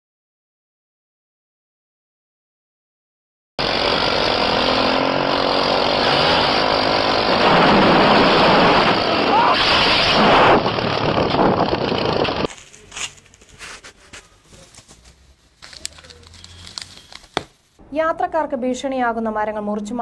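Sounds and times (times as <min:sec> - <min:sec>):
engine running: 0:03.6 - 0:13.4
men shouting: 0:09.0 - 0:09.7.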